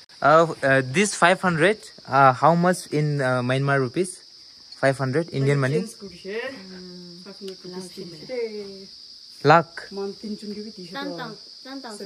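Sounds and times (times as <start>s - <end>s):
insects chirring: 0.0s - 12.0s.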